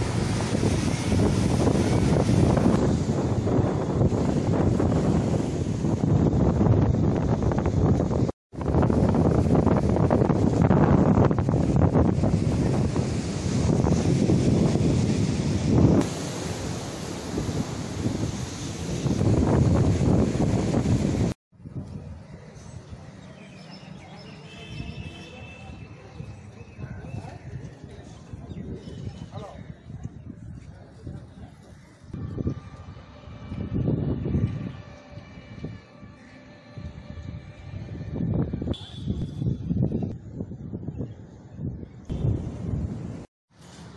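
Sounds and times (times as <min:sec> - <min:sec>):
wind buffeting microphone: 0:00.0 - 0:23.2, 0:24.8 - 0:43.9.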